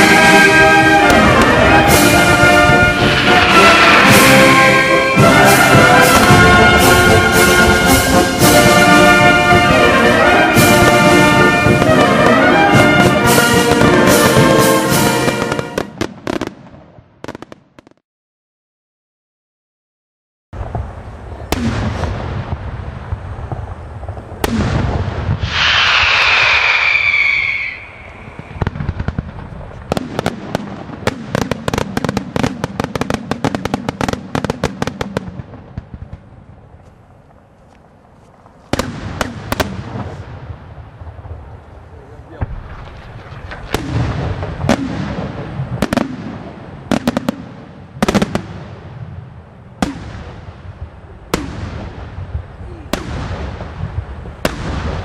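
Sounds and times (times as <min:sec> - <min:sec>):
rapid crackling bangs: 0:00.0 - 0:17.7, 0:20.6 - 0:37.3, 0:38.4 - 0:55.0
rolling echo: 0:00.0 - 0:17.9, 0:20.6 - 0:55.0
firework shell bursts: 0:25.4 - 0:29.2
shrill high-pitched whistle: 0:25.5 - 0:28.6.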